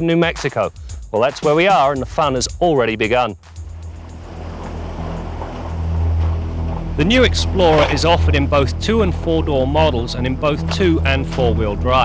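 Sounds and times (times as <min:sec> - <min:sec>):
background music: 0:00.0 - 0:12.0
car engine rumble: 0:03.6 - 0:11.9.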